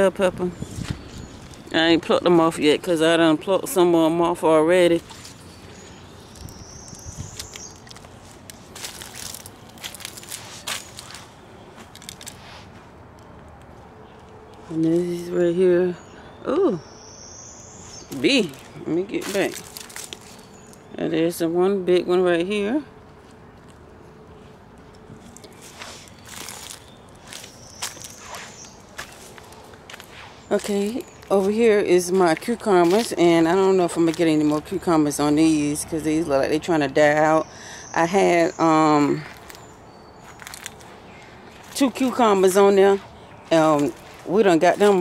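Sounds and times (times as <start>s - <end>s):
footsteps in dry leaves: 4.8s - 14.9s, 17.9s - 20.9s, 23.0s - 34.8s, 39.0s - 45.0s
plant leaves brushing microphone: 7.2s - 11.3s.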